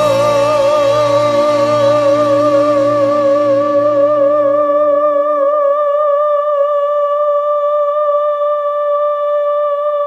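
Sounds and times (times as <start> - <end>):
backing track low tones: 0.0 - 7.9
singer holding high note: 0.0 - 10.0.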